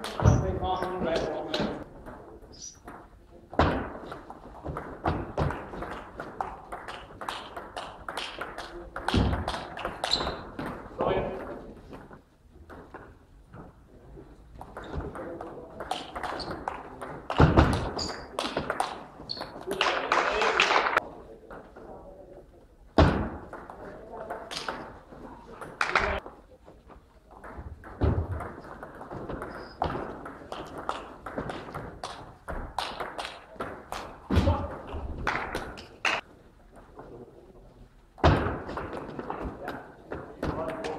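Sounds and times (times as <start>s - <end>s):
table tennis ball hits: 14.6s - 19.7s, 27.4s - 35.9s.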